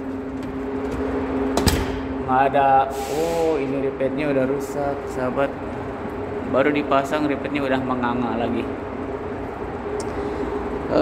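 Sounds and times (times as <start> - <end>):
exhaust fans humming: 0.0 - 11.0.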